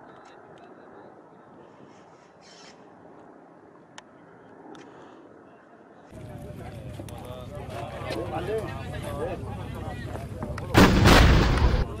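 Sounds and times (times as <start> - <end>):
artillery gun firing: 10.7 - 12.0.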